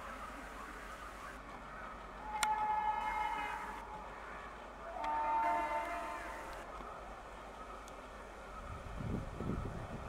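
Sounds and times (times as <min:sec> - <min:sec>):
locomotive horn blasts: 0:02.2 - 0:03.8, 0:04.9 - 0:06.6.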